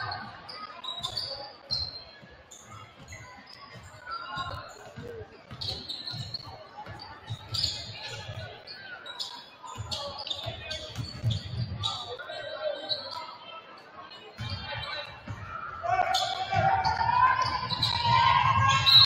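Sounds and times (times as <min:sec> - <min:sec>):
basketball bouncing on gym floor: 0:03.0 - 0:08.4, 0:09.8 - 0:11.8.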